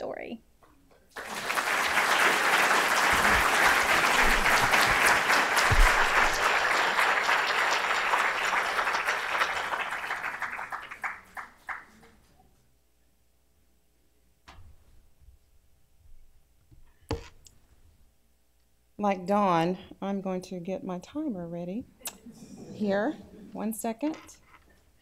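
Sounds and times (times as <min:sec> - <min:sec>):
audience applauding: 0:01.1 - 0:12.0.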